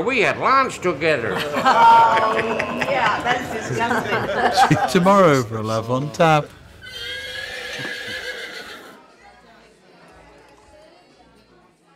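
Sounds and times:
horse whinnying: 6.8 - 9.0.

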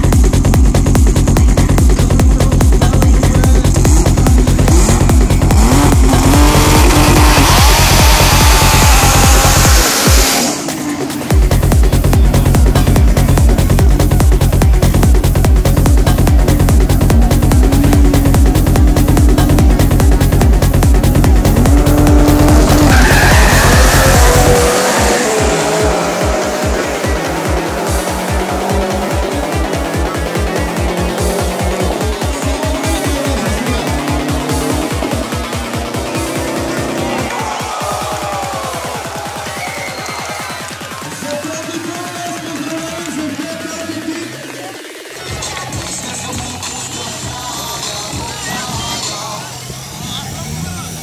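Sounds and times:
car engine revving: 0.0 - 37.9, 48.0 - 51.0
electronic dance music: 0.0 - 51.0
tyres squealing in a burnout: 5.7 - 10.9, 21.1 - 41.2
drag car launching: 21.0 - 32.0
tyre squeal: 22.6 - 24.6.

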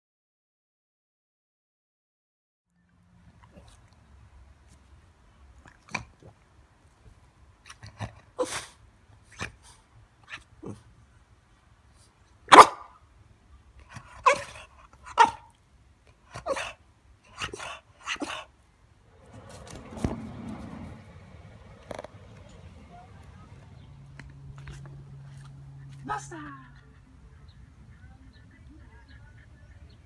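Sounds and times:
dog barking: 12.5 - 13.0, 14.2 - 15.4.

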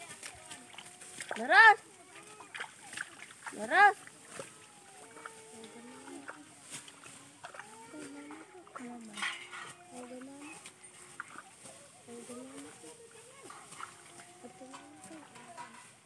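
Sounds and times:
people talking: 0.0 - 16.0
rice stalks being cut: 2.7 - 15.7.

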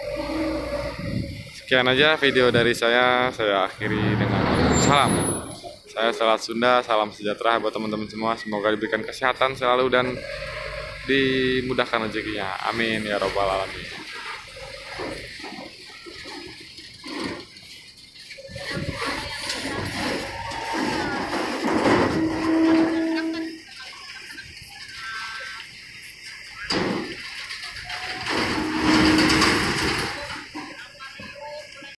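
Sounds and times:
port noise: 0.0 - 6.0
steady tone: 3.7 - 5.8
truck driving onto loading ramp: 3.8 - 5.8, 18.8 - 23.2, 26.7 - 30.6.

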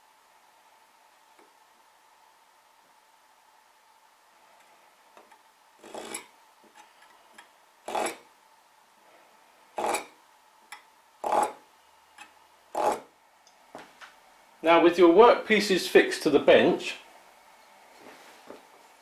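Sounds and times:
knife scraping along steel rule: 5.8 - 6.3, 7.9 - 8.3, 9.8 - 10.1, 11.2 - 11.6, 12.7 - 13.1.

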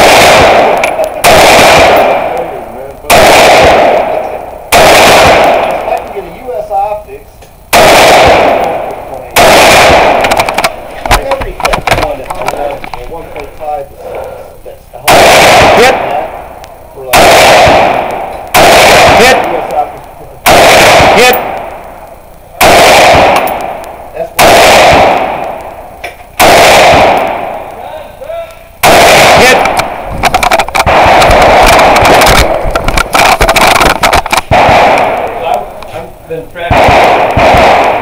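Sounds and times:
loud rifle shots: 0.0 - 6.9, 7.7 - 13.8, 15.0 - 22.0, 22.6 - 27.9, 28.8 - 38.0.

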